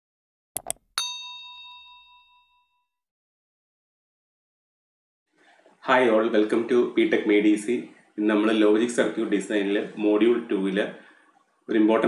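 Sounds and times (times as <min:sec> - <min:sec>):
bell ding ringing out: 0:01.0 - 0:02.8.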